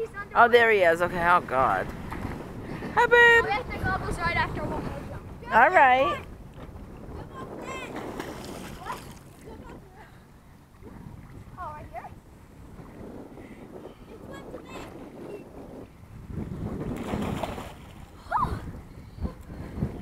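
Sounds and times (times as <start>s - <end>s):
wind buffeting microphone: 0.0s - 20.0s
water sloshing and splashing: 1.1s - 5.2s, 5.8s - 13.1s, 16.7s - 18.8s.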